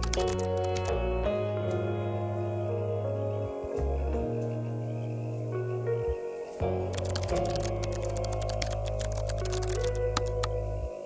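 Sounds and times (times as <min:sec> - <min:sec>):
keyboard typing clicks: 0:00.0 - 0:00.9, 0:06.9 - 0:10.6
soft background music: 0:00.0 - 0:11.0.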